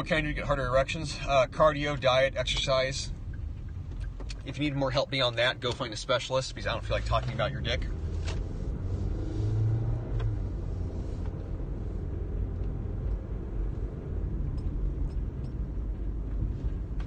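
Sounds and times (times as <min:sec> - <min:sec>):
car engine rumble: 0:00.0 - 0:17.0
road noise inside car: 0:00.0 - 0:17.0.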